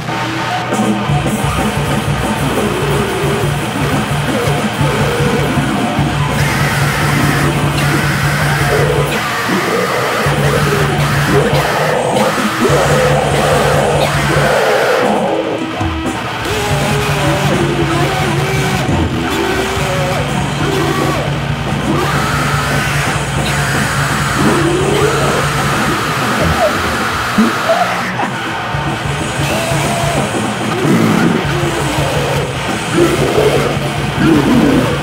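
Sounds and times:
distorted wall of noise: 0:00.0 - 0:35.0
low drone: 0:01.2 - 0:35.0
bending vocal-like sounds: 0:01.4 - 0:28.7, 0:29.4 - 0:35.0.

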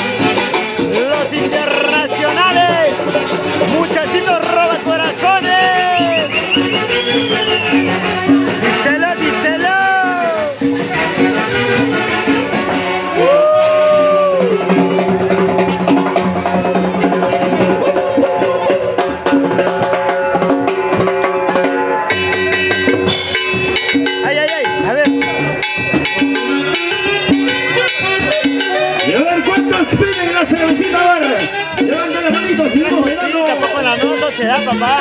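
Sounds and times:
live dance band playing: 0:00.0 - 0:35.0
voice calling out: 0:13.2 - 0:15.4.

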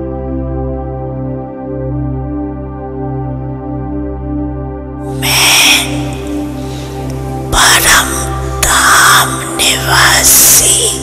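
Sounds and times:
ambient meditation music: 0:00.0 - 0:11.0.

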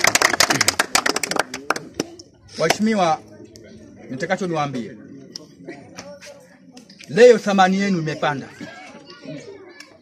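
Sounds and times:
crowd clapping: 0:00.0 - 0:02.8
voices: 0:00.2 - 0:10.0.

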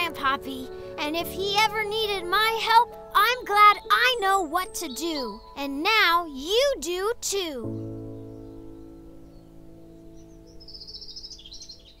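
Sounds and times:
closing music sustained chord: 0:07.6 - 0:12.0.

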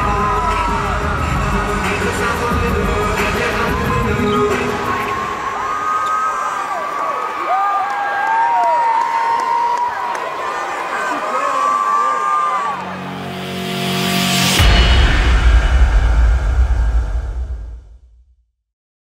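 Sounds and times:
crowd cheering and shouting: 0:00.0 - 0:15.9.

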